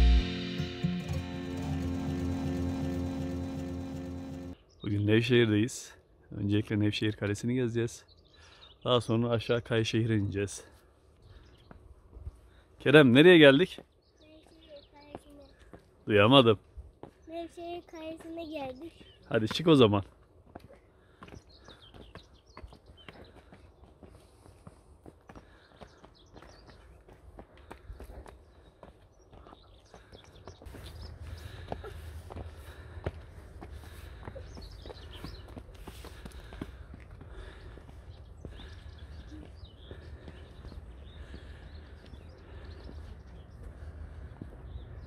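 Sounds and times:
footsteps on stone: 17.0 - 43.8.

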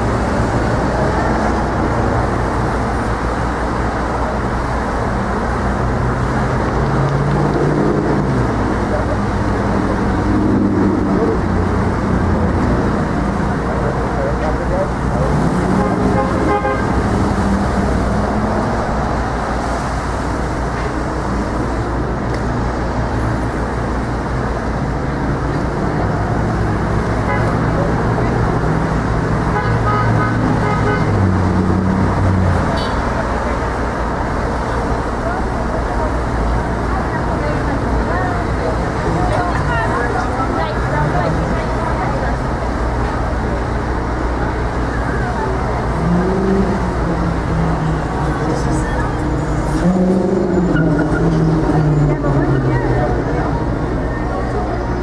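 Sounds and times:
cars driving past: 0.0 - 55.0.

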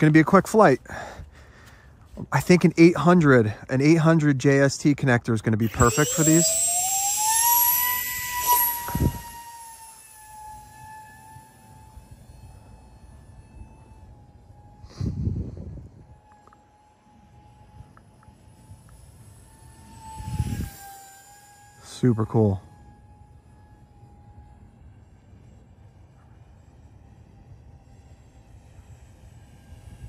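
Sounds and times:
electric ducted fans whining: 0.0 - 30.0.

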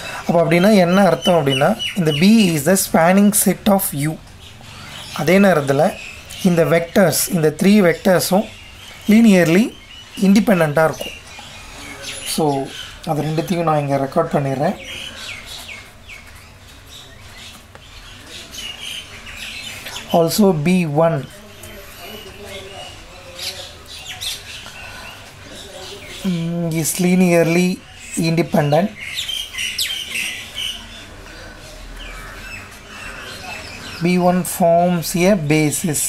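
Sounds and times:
small birds chirping: 0.0 - 36.0.

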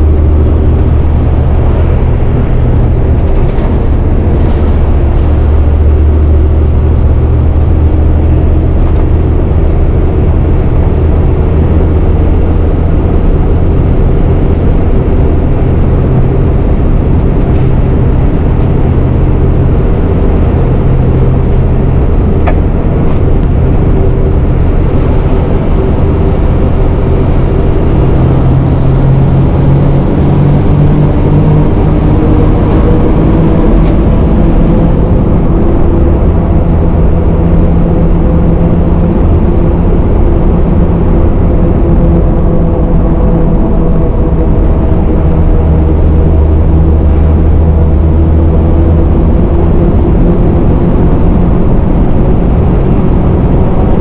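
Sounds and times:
truck diesel engine droning: 0.0 - 54.0.

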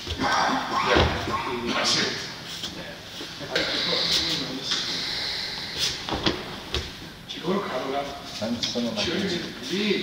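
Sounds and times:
voices: 0.1 - 6.0.

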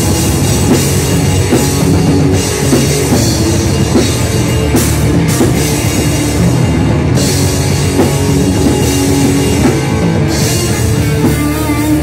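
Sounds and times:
bass guitar: 0.0 - 12.0
distorted guitars: 0.0 - 12.0
drum kit: 0.0 - 12.0.

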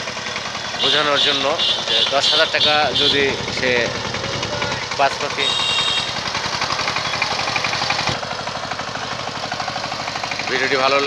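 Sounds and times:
diesel engine chugging: 0.0 - 11.0.

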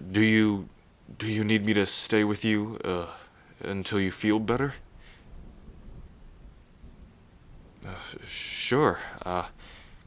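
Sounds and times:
man speaking: 0.0 - 4.8, 7.8 - 9.6
rain: 0.0 - 10.0
low thunder: 4.8 - 10.0.

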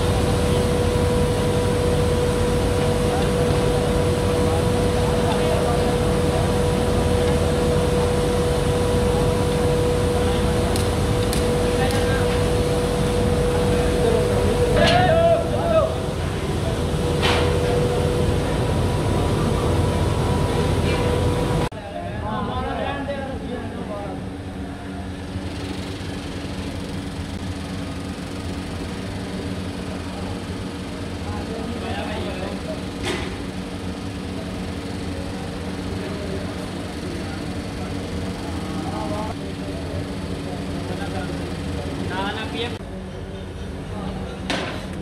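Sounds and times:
machinery humming: 0.0 - 45.0
workers calling out: 13.6 - 18.4.

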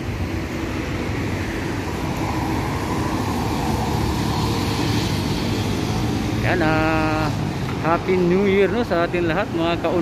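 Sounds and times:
rumble of passing traffic: 0.0 - 10.0.

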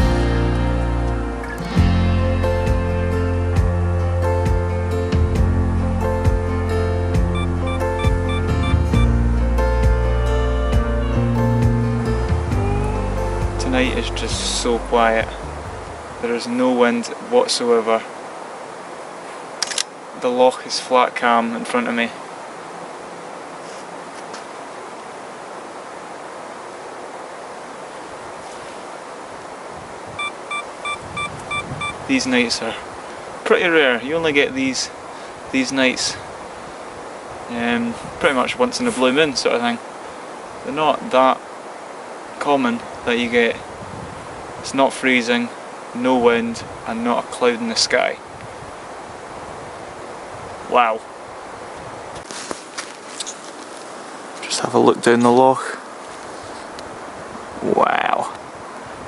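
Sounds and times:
short electronic beeps: 7.3 - 9.1, 30.2 - 32.0
faint hiss: 12.8 - 30.9, 52.2 - 58.4.

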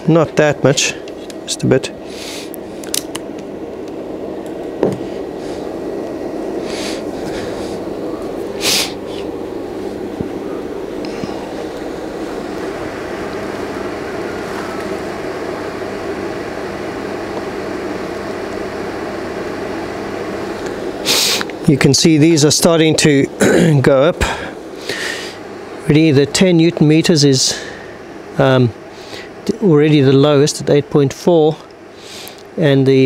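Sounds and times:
fan heater whirring: 0.0 - 33.0.

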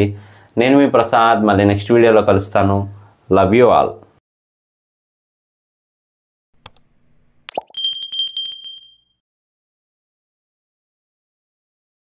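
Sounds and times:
mouse click: 6.6 - 6.9
bell ring with rattling trill: 7.8 - 9.2.

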